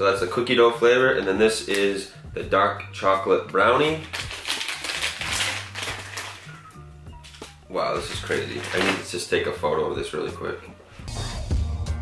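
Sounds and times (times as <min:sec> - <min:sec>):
plastic snack wrappers crinkling: 0:03.8 - 0:09.2.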